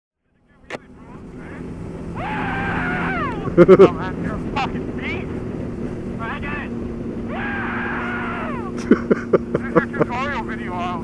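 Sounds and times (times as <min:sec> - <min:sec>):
motorcycle engine running: 0:00.3 - 0:11.0.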